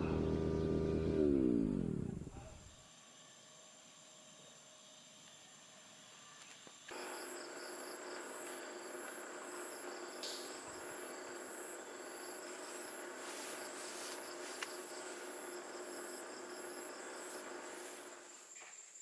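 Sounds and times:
insects chirring: 0:02.8 - 0:19.0.

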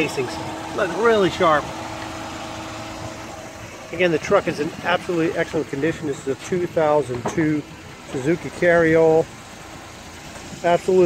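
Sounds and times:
small engine idling: 0:00.0 - 0:11.0.

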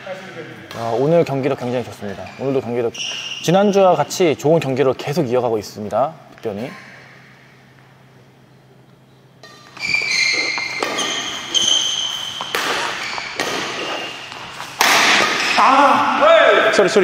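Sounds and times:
shoes squeaking on court floor: 0:00.1 - 0:04.2, 0:08.8 - 0:15.8
racket hitting shuttlecock: 0:09.4 - 0:15.6.

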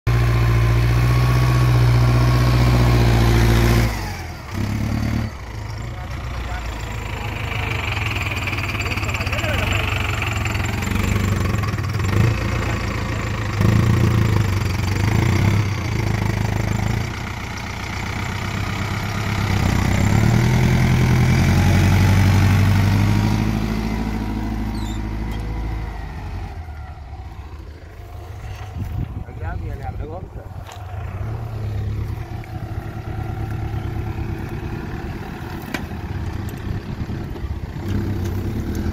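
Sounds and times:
tractor diesel engine under load: 0:00.0 - 0:38.9.

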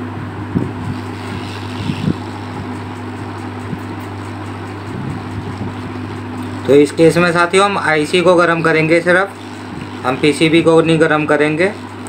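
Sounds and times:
hot-air blower hissing: 0:00.0 - 0:12.0.

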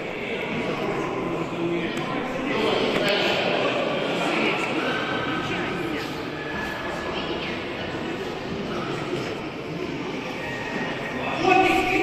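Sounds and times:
echoing sports hall background: 0:00.0 - 0:12.0.

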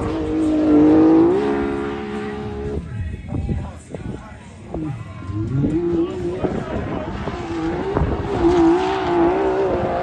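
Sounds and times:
buggy engine at high revs: 0:00.0 - 0:02.9, 0:04.8 - 0:10.0.

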